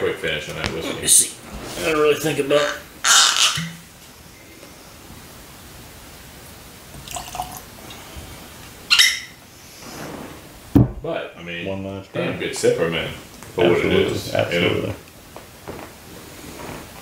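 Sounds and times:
whisky trickling into glass: 6.9s - 8.0s
bottle knocking on wooden table: 10.8s - 11.0s.

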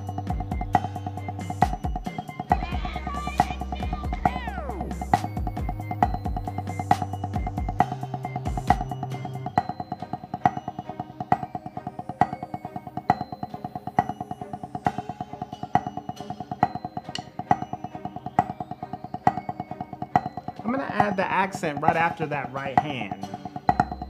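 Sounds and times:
drumsticks on practice pad: 0.0s - 24.0s.

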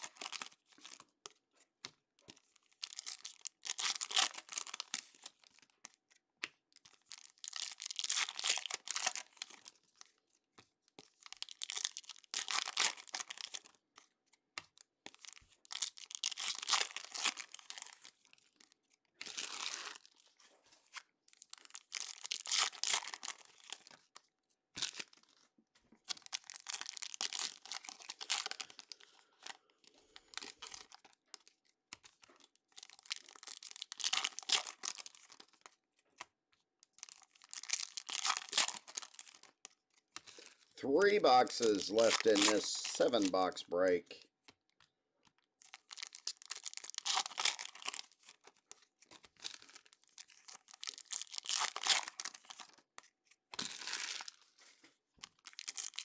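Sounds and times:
foil wrappers tearing and crinkling: 2.8s - 5.6s, 7.0s - 9.7s, 11.2s - 13.7s, 15.2s - 18.1s, 19.2s - 20.2s, 21.4s - 24.0s, 26.1s - 29.1s, 30.2s - 35.8s, 37.0s - 39.5s, 40.2s - 43.3s, 45.6s - 52.8s, 55.2s - 56.0s.

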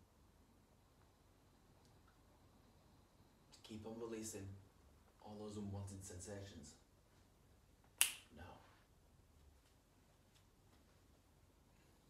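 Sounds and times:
finger snap: 8.0s - 8.4s.

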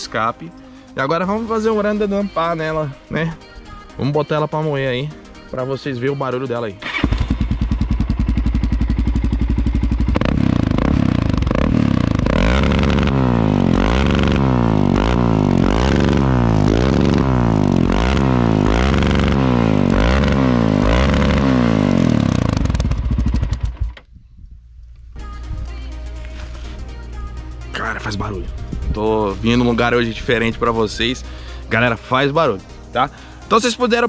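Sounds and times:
motorcycle engine revving: 6.8s - 24.0s.

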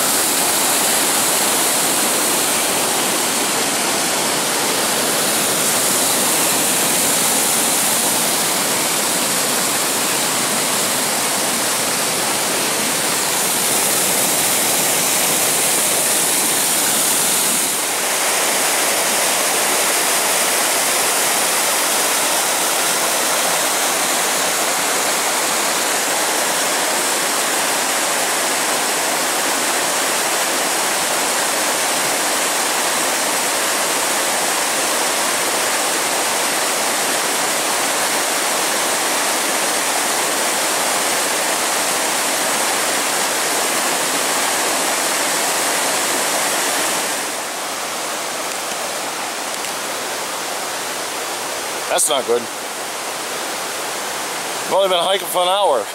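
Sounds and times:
stream rushing over rocks: 0.0s - 55.9s.

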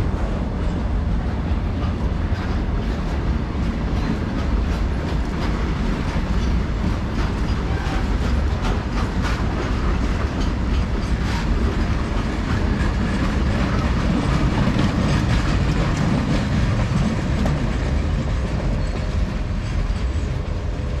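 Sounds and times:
freight train wheels rumbling: 0.0s - 21.0s
wheels clicking over rail joints: 0.3s - 20.6s.

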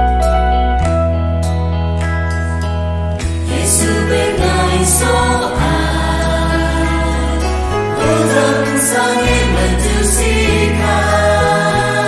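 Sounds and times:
worship song singing with band: 3.4s - 12.0s.

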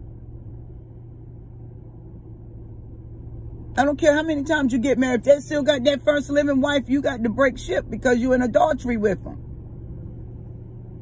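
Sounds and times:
car cabin hum and rumble: 0.0s - 11.0s.

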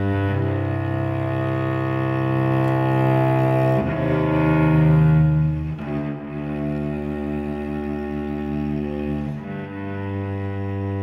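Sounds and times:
cello bowed low notes: 0.0s - 11.0s.

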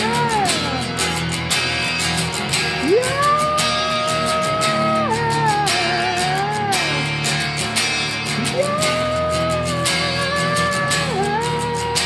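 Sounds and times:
person singing high note: 0.0s - 0.9s, 2.8s - 7.2s, 8.4s - 12.0s
guitar strumming: 0.0s - 12.0s.

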